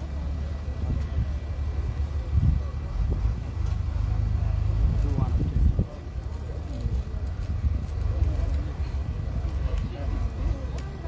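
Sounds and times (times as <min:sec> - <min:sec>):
faint indistinct voices: 0:00.0 - 0:11.0
steady low rumble: 0:00.0 - 0:11.0.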